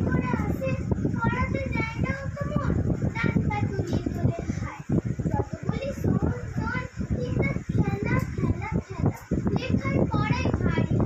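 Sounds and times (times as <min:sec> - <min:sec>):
child talking: 0:00.0 - 0:11.0
children's voices: 0:00.0 - 0:11.0.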